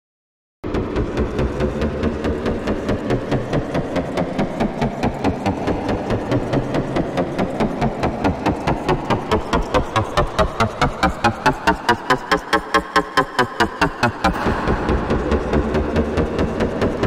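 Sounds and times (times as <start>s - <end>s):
gritty electronic pulses: 0.7s - 17.0s.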